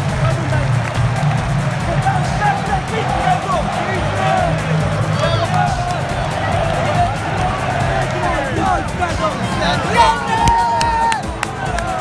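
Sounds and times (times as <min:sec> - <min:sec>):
crowd chatter: 0:00.0 - 0:12.0
music playing: 0:00.0 - 0:12.0.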